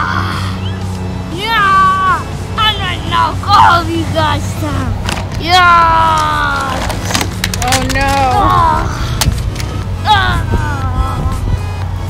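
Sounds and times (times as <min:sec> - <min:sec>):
background music: 0:00.0 - 0:12.0
child's high-pitched vocal cries: 0:10.0 - 0:11.6.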